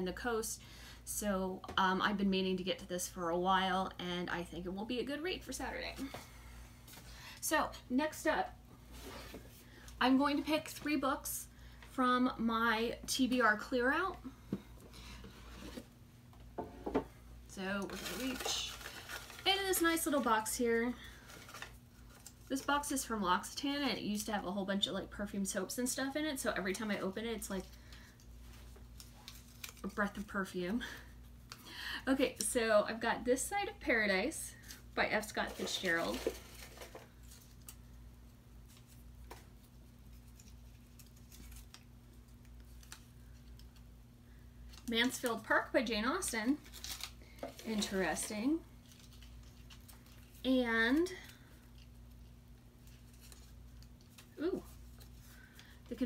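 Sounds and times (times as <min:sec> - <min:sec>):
paper crinkling: 0:17.8 - 0:22.7, 0:27.6 - 0:30.3, 0:34.6 - 0:37.9, 0:38.6 - 0:43.8, 0:46.4 - 0:55.8.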